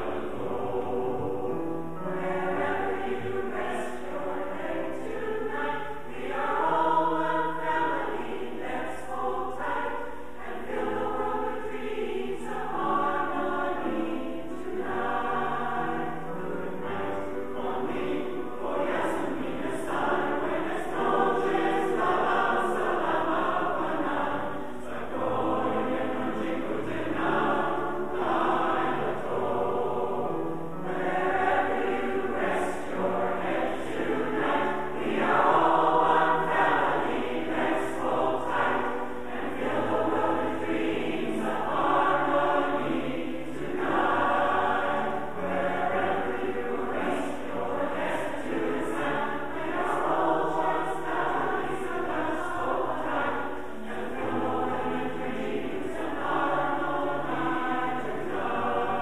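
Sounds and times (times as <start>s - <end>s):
choir singing in harmony: 0.0s - 59.0s.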